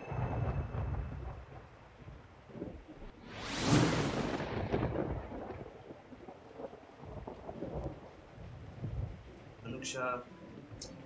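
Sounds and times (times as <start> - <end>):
thunder rumbling: 0.0 - 9.6
rain falling: 0.0 - 11.0.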